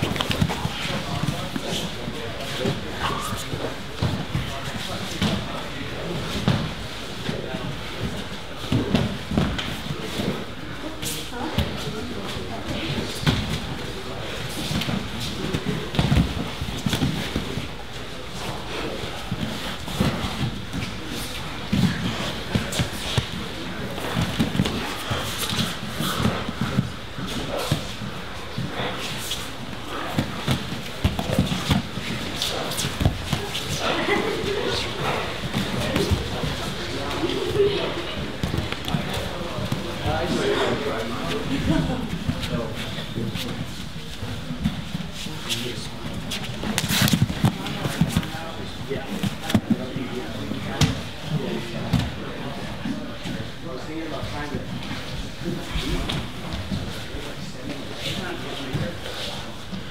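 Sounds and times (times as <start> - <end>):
indistinct chatter: 0.0 - 59.9.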